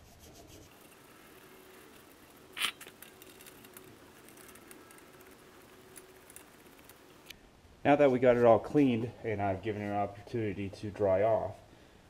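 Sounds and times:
toothbrush scrubbing metal: 0:00.0 - 0:07.2.

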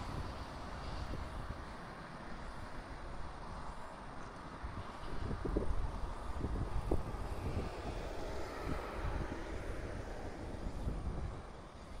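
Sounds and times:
wind buffeting microphone: 0:00.0 - 0:03.6, 0:04.5 - 0:12.0.

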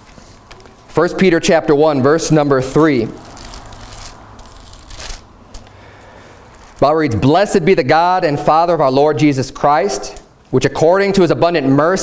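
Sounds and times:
pages turning: 0:00.0 - 0:00.9, 0:02.7 - 0:05.8, 0:06.4 - 0:06.9
low room hum: 0:00.0 - 0:12.0.

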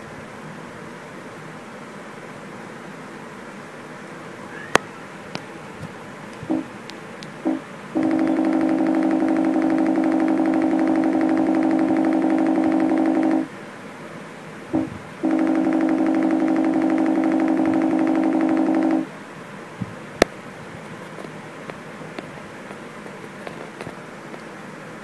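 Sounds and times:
computer alert tone repeating: 0:07.5 - 0:13.5, 0:14.8 - 0:19.1.

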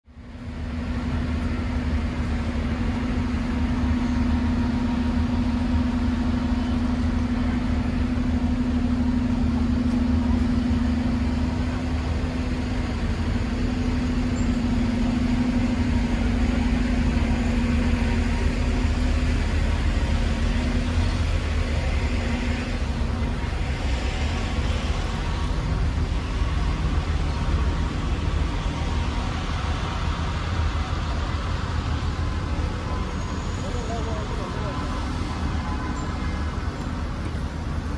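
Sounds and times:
engine humming: 0:00.0 - 0:37.9
road traffic rumble: 0:00.0 - 0:37.9.

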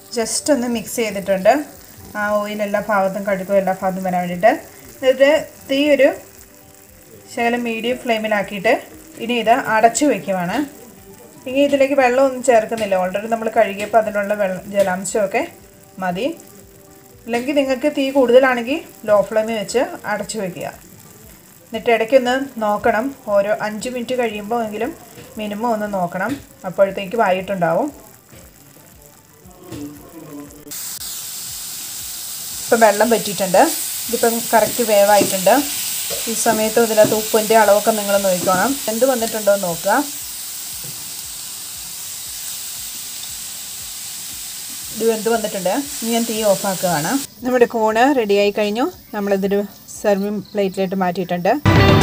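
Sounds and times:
faint sizzling in a pan: 0:00.0 - 0:52.0
woman speaking: 0:32.7 - 0:40.1, 0:44.9 - 0:51.7.

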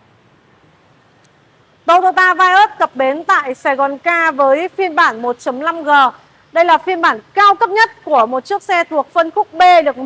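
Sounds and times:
woman speaking: 0:01.9 - 0:10.0.

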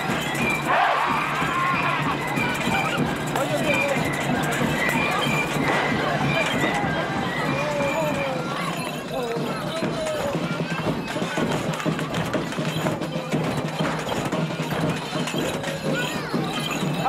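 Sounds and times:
crowd voices and shouts: 0:00.0 - 0:17.0
festival music with steady beat: 0:00.0 - 0:17.0.

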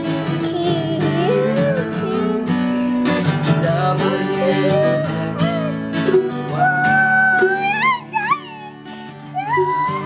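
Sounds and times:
toddler singing: 0:00.0 - 0:02.5, 0:06.5 - 0:10.0
strummed strings: 0:00.0 - 0:10.0.

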